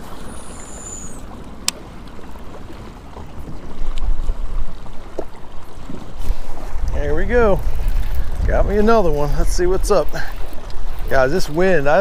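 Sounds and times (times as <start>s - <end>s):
choppy lake water: 0.0s - 12.0s
strong wind on microphone: 6.3s - 10.1s.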